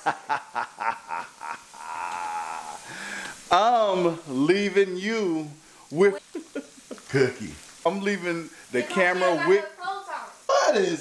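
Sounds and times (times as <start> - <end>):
man laughing hard: 0.0 - 2.8, 6.2 - 7.3.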